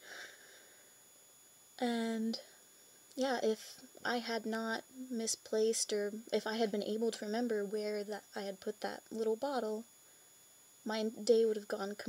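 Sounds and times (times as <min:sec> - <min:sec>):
woman's voice: 0:01.8 - 0:02.5, 0:03.2 - 0:09.8, 0:10.9 - 0:12.0.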